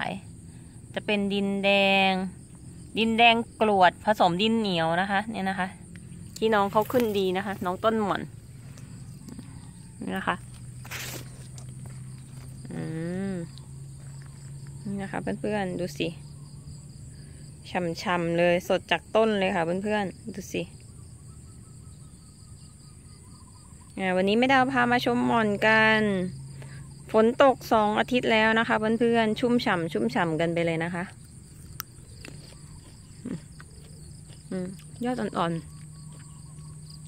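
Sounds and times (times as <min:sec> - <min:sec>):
crickets chirring: 0:00.0 - 0:37.0
insects trilling: 0:00.0 - 0:37.0
low steady hum: 0:00.0 - 0:37.0.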